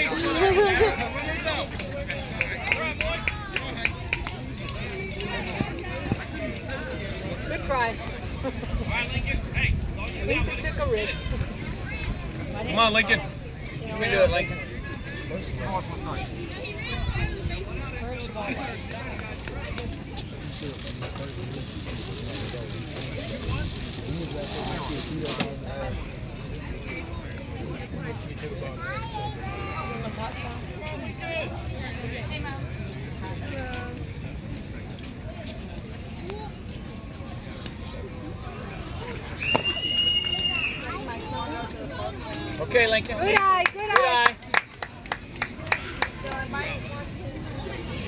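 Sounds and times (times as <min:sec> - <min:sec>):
indistinct chatter of voices: 0:00.0 - 0:48.0.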